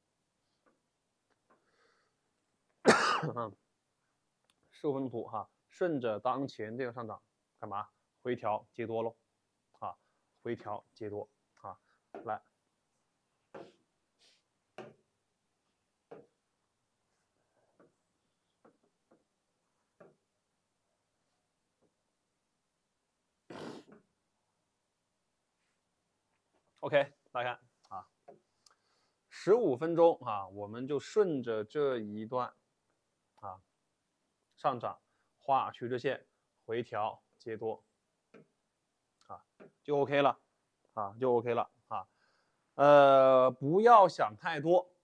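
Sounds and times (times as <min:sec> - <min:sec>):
man breathing: 0:01.5 - 0:02.3, 0:42.1 - 0:42.7
man coughing: 0:02.8 - 0:03.5.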